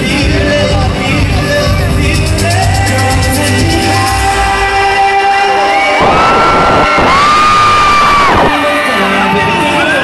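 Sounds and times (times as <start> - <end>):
pop music over loudspeakers: 0.0 - 10.0
crowd cheering and screaming: 4.2 - 10.0.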